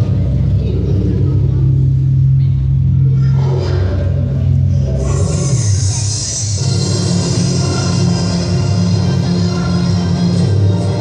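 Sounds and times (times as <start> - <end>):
loud low drone: 0.0 - 11.0.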